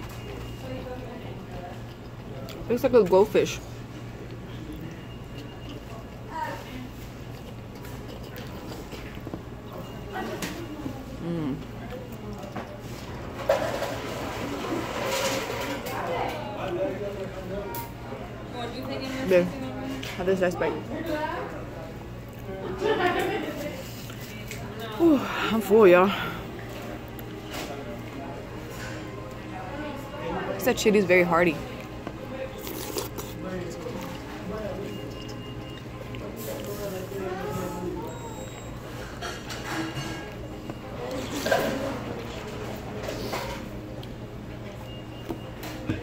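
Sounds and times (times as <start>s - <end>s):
chewing with wet mouth sounds: 0.0s - 14.1s, 23.4s - 29.9s, 30.6s - 46.0s
faint background chatter: 0.0s - 46.0s.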